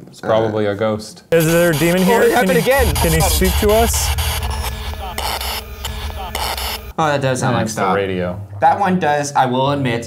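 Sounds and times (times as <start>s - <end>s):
clipped voice fragments: 1.4s - 6.9s
radio static sweeping stations: 1.4s - 6.9s.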